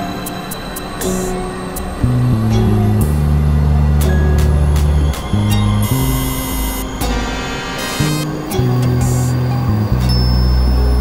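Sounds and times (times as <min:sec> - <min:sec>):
bright buzzing tone: 0:00.0 - 0:11.0
deep electronic drones: 0:00.0 - 0:11.0.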